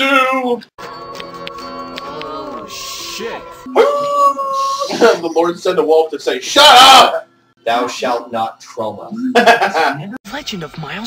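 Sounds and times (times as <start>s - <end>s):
wolf howling: 3.6s - 5.0s.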